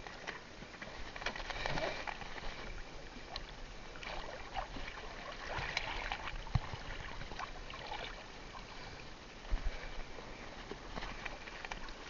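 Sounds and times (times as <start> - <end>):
seawater splashing and dripping: 1.2 - 8.9.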